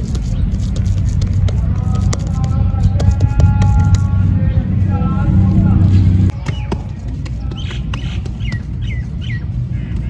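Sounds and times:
bird chirping: 0.0 - 1.2, 5.8 - 10.0
low steady rumble: 0.0 - 10.0.

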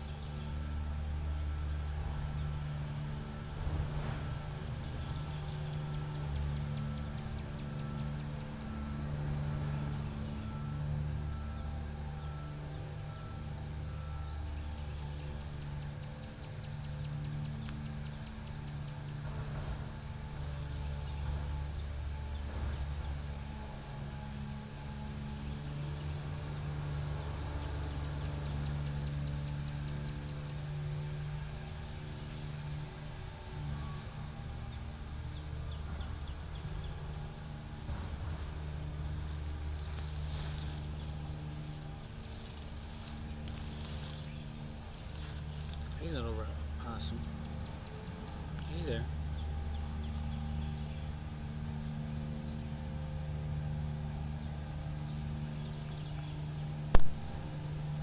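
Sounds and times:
low motor hum: 0.0 - 58.0.

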